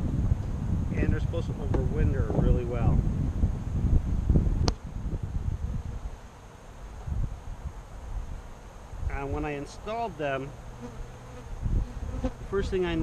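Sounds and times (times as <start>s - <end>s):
wind buffeting microphone: 0.0s - 6.2s, 6.9s - 9.5s, 11.4s - 13.0s
outdoor background: 0.0s - 13.0s.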